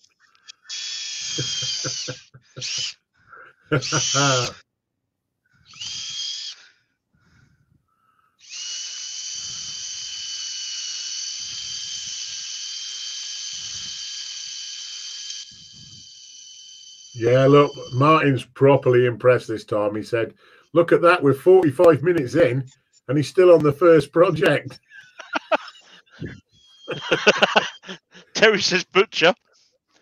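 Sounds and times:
cordless drill boring into wood: 0.7 - 2.9, 3.8 - 4.5, 5.7 - 6.6, 8.4 - 17.4.

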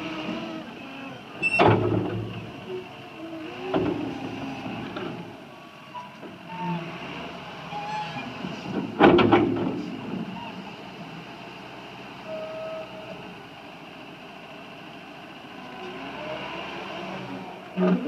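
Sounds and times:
diesel engine running: 0.0 - 18.0
knocks and rattles: 8.8 - 10.2.

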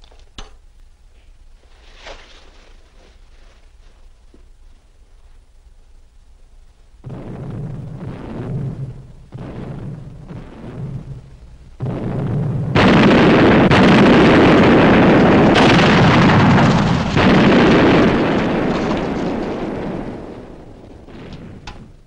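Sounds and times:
sustained loud rumble: 6.9 - 22.0
cannon shots and shell explosions: 7.0 - 22.0.

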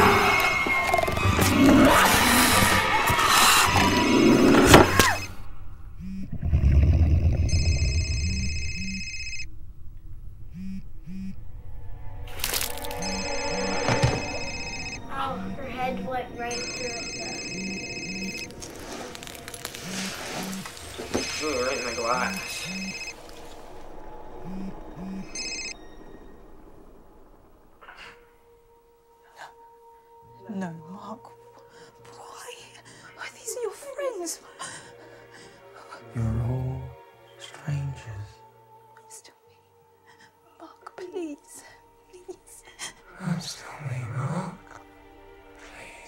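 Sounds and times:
short low pulses: 5.2 - 12.2
low rumble: 5.2 - 30.1
mobile phone buzzing: 7.4 - 9.5, 10.5 - 11.4, 13.0 - 15.0, 16.5 - 18.5, 20.5 - 23.2
held high tone: 12.3 - 19.0, 19.8 - 26.6.

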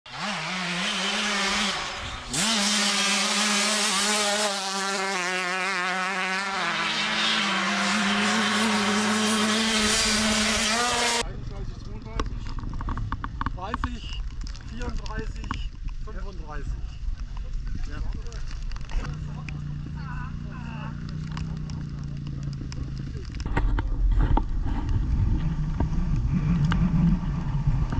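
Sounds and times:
dirt bike engine revving: 0.1 - 11.3
scattered clicks and knocks: 11.8 - 16.0.

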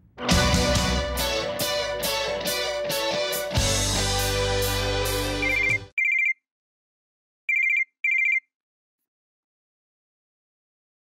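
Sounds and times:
pager beeping trill: 5.4 - 6.4.

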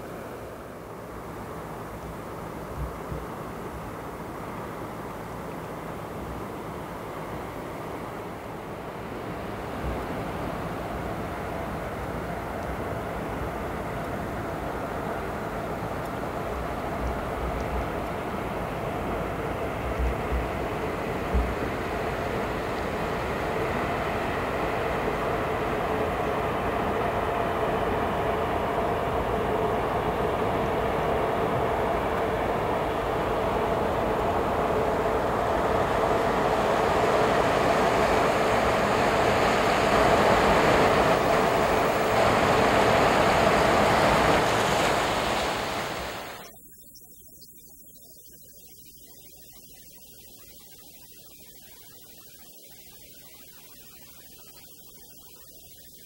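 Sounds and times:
faint hum: 0.0 - 56.0.

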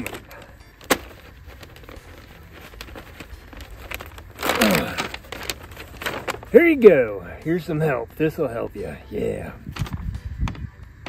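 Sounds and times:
paper sheet tearing: 0.0 - 6.6
paper rustling and crinkling: 0.0 - 7.2, 9.6 - 11.0.

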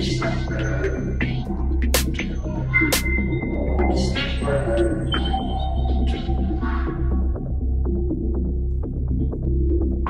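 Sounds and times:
deep pulsing bass line: 0.0 - 10.0.

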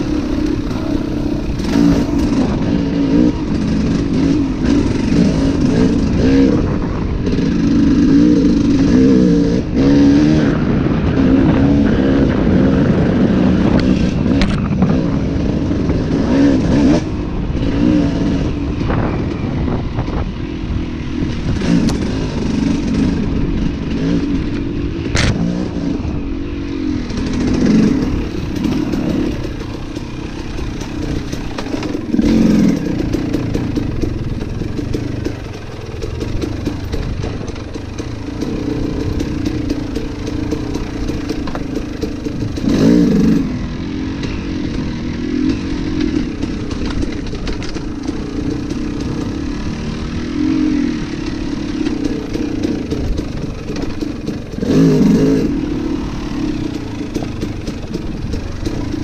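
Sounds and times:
dirt bike engine revving: 0.0 - 59.0.

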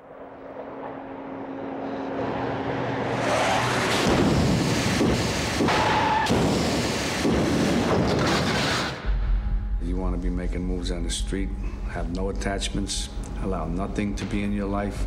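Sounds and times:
rumble: 0.0 - 2.7, 4.0 - 15.0
loud crashing noise: 3.8 - 9.0.

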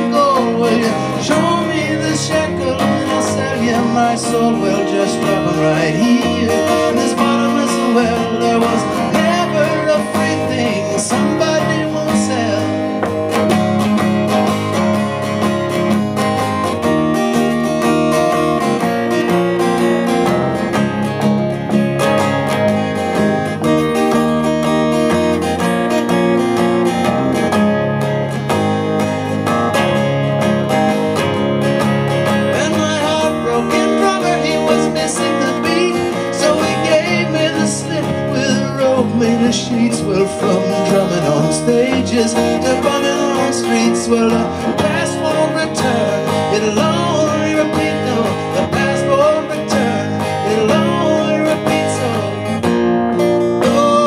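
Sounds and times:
acoustic guitars playing: 0.0 - 54.0.

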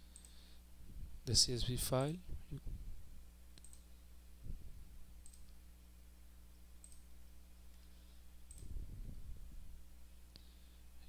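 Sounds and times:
faint electrical hum: 0.0 - 11.0
computer mouse clicks: 0.1 - 0.4, 3.6 - 3.9, 5.2 - 5.6, 6.8 - 7.0, 8.5 - 8.7.

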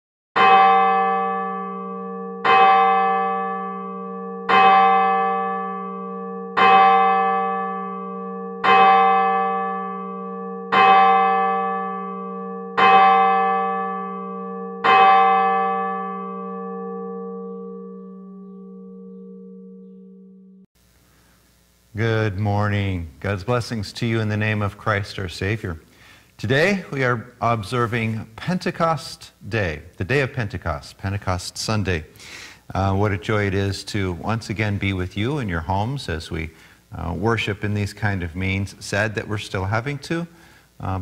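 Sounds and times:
church bell tolling: 0.4 - 20.7.

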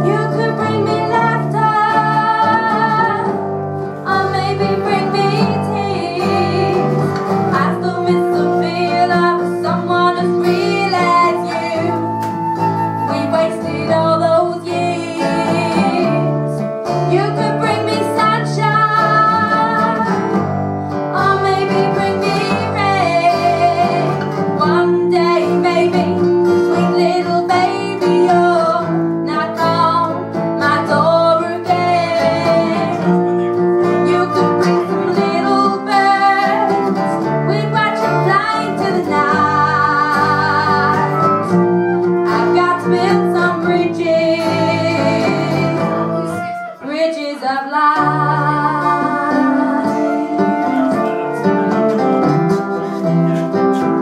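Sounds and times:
strummed acoustic guitars: 0.0 - 54.0
flute melody: 6.3 - 16.5, 32.5 - 37.5, 39.1 - 54.0.

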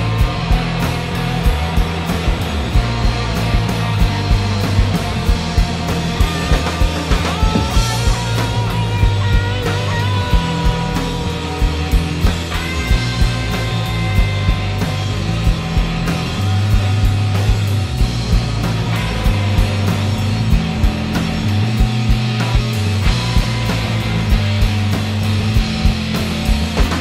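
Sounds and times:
bass guitar: 0.0 - 27.0
drum kit beat: 0.0 - 27.0
electric guitars: 0.0 - 27.0.

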